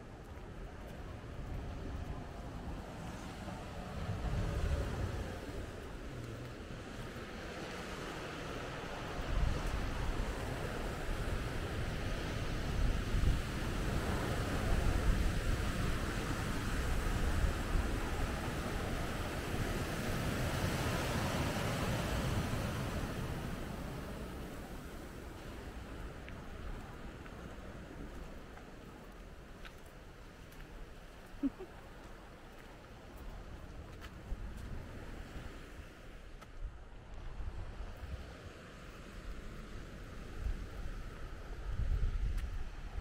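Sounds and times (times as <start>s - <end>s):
wind buffeting microphone: 0.0s - 31.2s, 32.4s - 43.0s.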